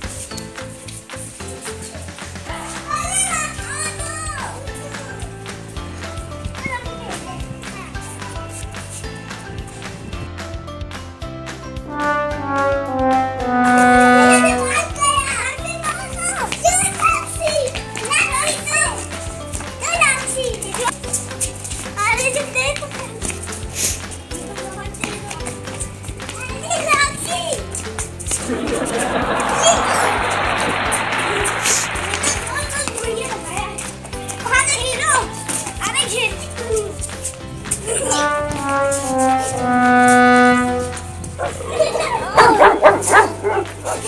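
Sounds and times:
background music low notes: 0.0s - 44.0s
children shouting and squealing: 41.4s - 44.0s.

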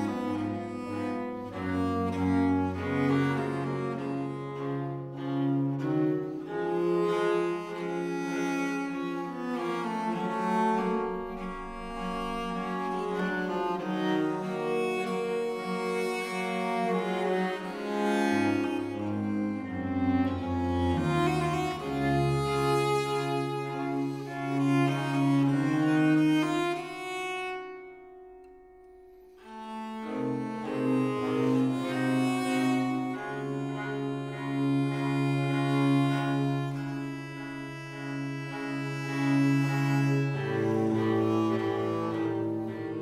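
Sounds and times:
string trio playing classical music: 0.0s - 43.0s.

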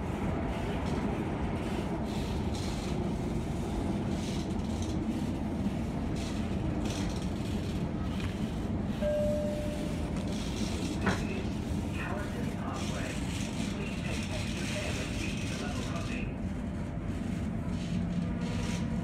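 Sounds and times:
train wheels and motors rumbling: 0.0s - 19.0s
short steady tone: 9.0s - 10.0s.

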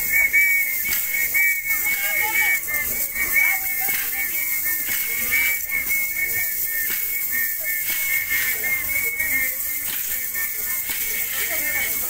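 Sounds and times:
dance drum beat: 0.0s - 12.0s
high whistle blasts: 0.0s - 12.0s.

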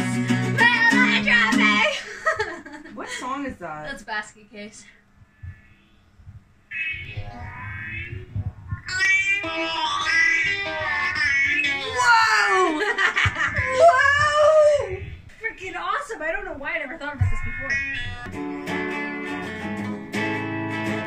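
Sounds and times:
people laughing hard: 11.9s - 14.1s.

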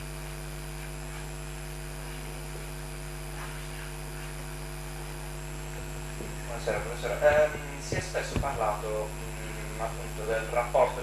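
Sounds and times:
constant hiss: 0.0s - 11.0s
electrical mains hum: 0.0s - 11.0s.

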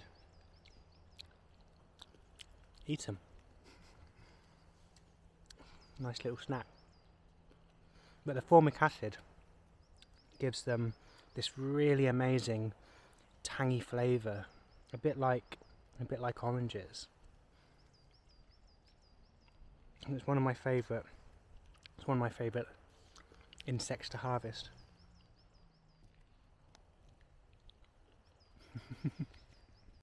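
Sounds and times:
faint bird song: 0.0s - 30.0s.

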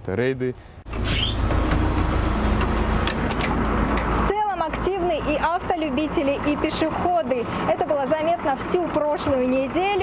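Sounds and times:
bus engine idling: 0.9s - 10.0s.

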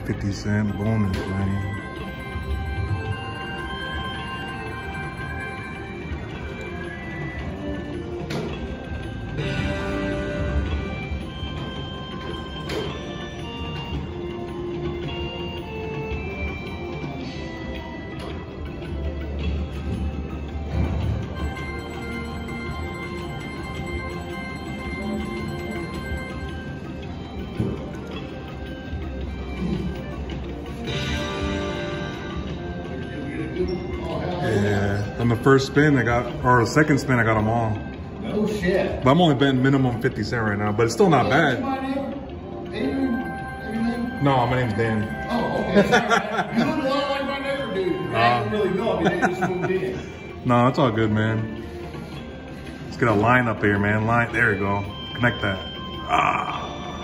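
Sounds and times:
slot machine electronic chiming notes: 0.0s - 57.0s.

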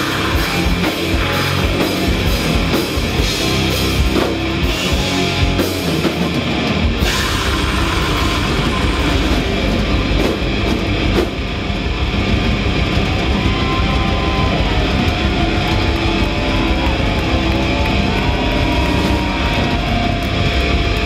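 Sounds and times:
doom metal band playing live: 0.0s - 21.0s.

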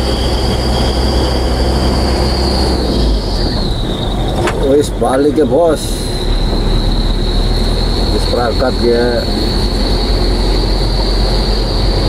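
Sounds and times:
car driving heard from cabin: 0.0s - 12.0s
thin high whine: 0.0s - 12.0s.

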